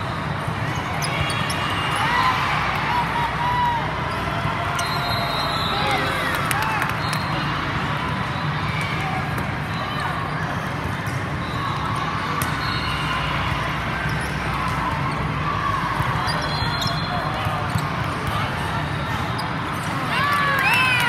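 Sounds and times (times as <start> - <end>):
crowd shouting and cheering: 0.0 - 21.0
voices of players and spectators: 0.0 - 21.0.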